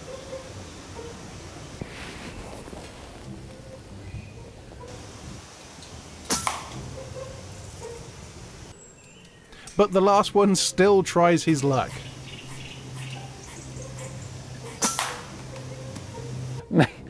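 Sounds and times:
air rifle shot: 0:06.3 - 0:06.8, 0:14.8 - 0:15.3.

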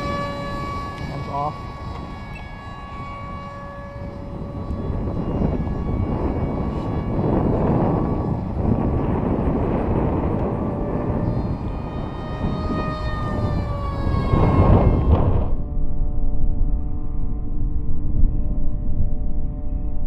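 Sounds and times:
model jet motor whining: 0:00.0 - 0:16.0
wind rumble on microphone: 0:00.0 - 0:20.0.

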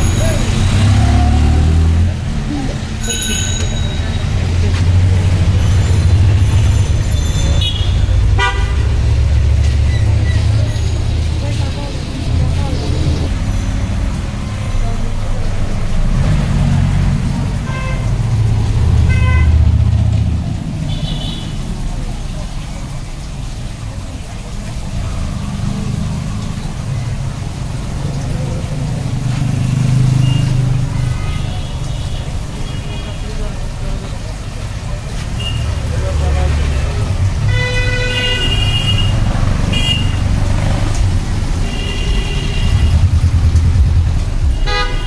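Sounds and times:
low traffic rumble: 0:00.0 - 0:45.0
vehicle horn toots: 0:07.6 - 0:08.9, 0:44.6 - 0:45.0.

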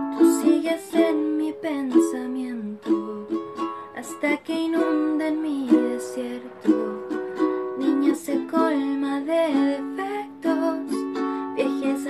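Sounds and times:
ukulele strumming chords: 0:00.0 - 0:12.0
woman singing: 0:00.0 - 0:12.0.

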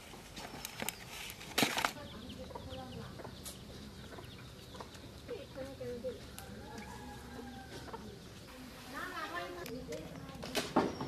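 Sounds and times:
outdoor background noise: 0:00.0 - 0:11.0
hens clucking: 0:02.0 - 0:10.5.

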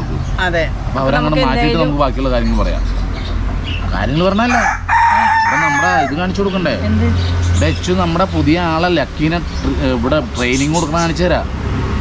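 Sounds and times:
people talking: 0:00.0 - 0:02.9, 0:03.9 - 0:11.5
rooster crowing: 0:04.3 - 0:06.4.

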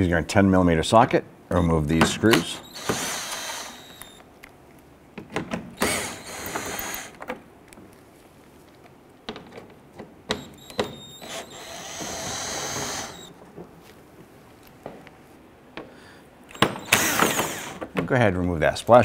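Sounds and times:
power driver motor whine: 0:01.5 - 0:04.2, 0:05.8 - 0:07.2, 0:10.3 - 0:13.4, 0:16.5 - 0:17.8.

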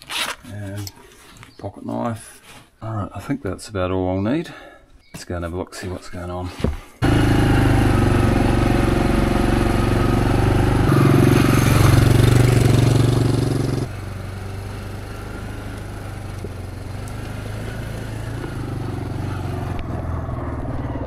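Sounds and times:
quad bike engine running: 0:07.0 - 0:21.0.

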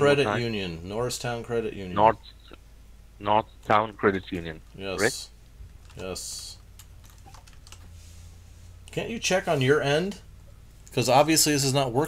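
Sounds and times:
computer keyboard typing: 0:05.7 - 0:07.9.

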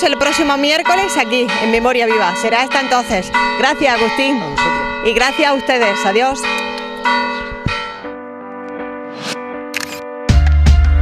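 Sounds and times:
church bells ringing: 0:00.0 - 0:09.0.

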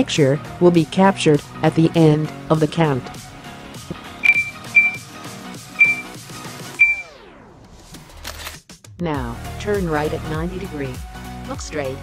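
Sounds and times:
short high beeps: 0:04.2 - 0:05.0, 0:05.8 - 0:06.1, 0:06.8 - 0:07.1.

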